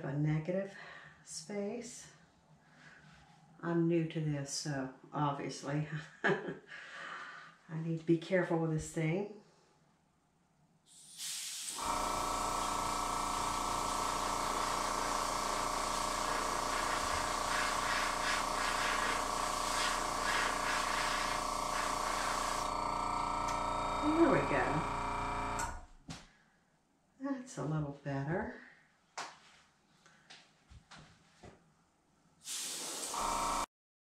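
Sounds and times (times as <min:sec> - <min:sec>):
airbrush hissing air: 0:10.9 - 0:22.8, 0:32.4 - 0:33.6
small compressor humming: 0:11.7 - 0:25.9, 0:32.9 - 0:33.7.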